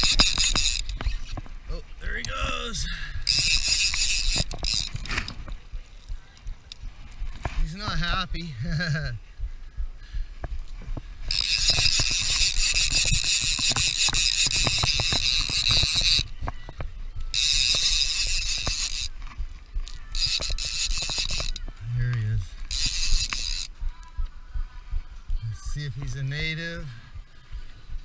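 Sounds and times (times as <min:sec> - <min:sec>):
fishing reel drag buzzing: 0:00.0 - 0:01.4, 0:02.7 - 0:06.2, 0:11.2 - 0:16.4, 0:17.2 - 0:23.8.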